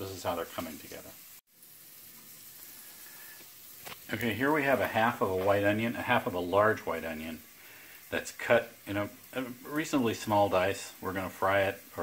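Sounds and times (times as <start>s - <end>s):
bacon sizzling in a pan: 0.0s - 12.0s.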